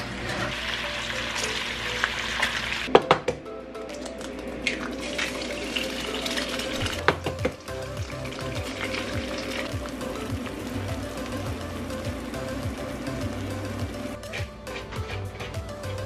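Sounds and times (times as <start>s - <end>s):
eggs sizzling in a skillet: 0.0s - 2.9s, 4.3s - 16.0s
egg cracking: 1.3s - 12.3s
music with repeating bass line: 6.8s - 16.0s.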